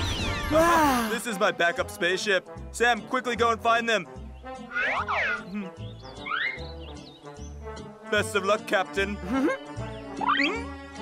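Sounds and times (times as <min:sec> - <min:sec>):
cartoon background music: 0:00.0 - 0:11.0.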